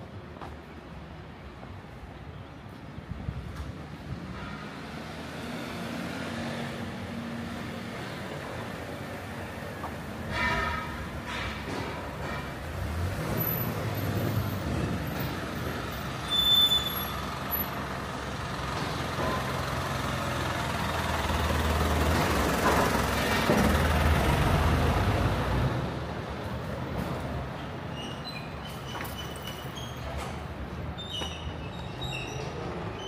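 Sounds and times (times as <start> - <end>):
street traffic noise: 0.0 - 33.0
high-pitched squeak: 16.2 - 17.3
truck engine passing: 17.2 - 26.1.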